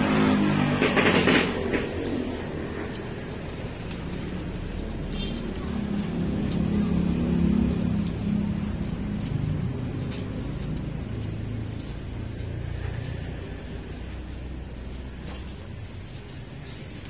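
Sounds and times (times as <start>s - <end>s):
vehicle engine running: 0.0s - 17.0s
banknotes being leafed through: 1.3s - 17.0s.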